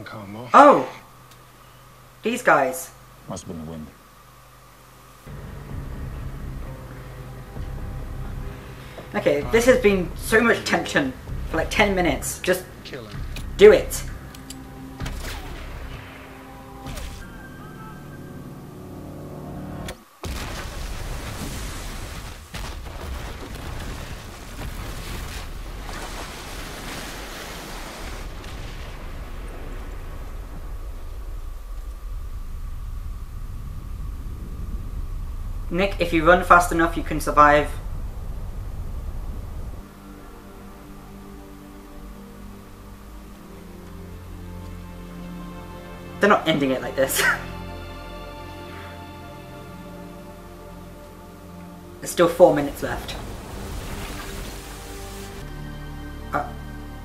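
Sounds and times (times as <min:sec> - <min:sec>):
faint hum of tones: 0:00.0 - 0:57.0
low steady rumble: 0:00.0 - 0:57.0
held orchestral notes: 0:05.2 - 0:19.9, 0:39.7 - 0:57.0
deep rumbling roar: 0:05.3 - 0:14.3, 0:28.2 - 0:42.1, 0:52.6 - 0:55.4.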